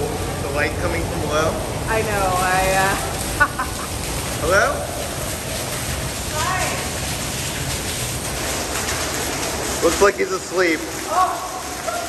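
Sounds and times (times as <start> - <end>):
falling water streams: 0.0 - 12.0
water jets hissing and splashing: 0.0 - 12.0.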